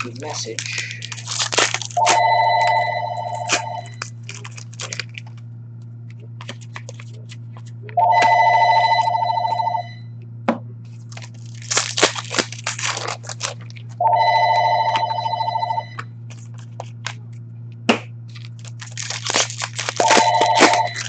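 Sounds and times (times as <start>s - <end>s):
trading cards and wrappers rustling: 0.0s - 5.4s, 6.2s - 9.2s, 10.9s - 17.4s, 18.3s - 21.0s
steady low hum: 0.0s - 21.0s
telephone ringing: 2.0s - 4.0s, 8.0s - 10.1s, 14.0s - 16.0s, 20.0s - 21.0s.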